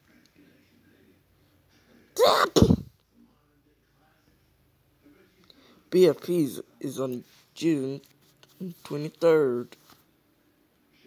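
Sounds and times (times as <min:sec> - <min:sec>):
person's harsh vocal burst: 0:02.2 - 0:02.9.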